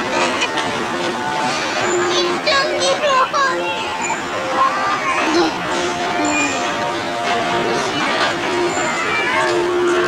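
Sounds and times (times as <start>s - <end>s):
children calling and chattering: 0.0s - 10.0s
crowd din: 0.0s - 10.0s.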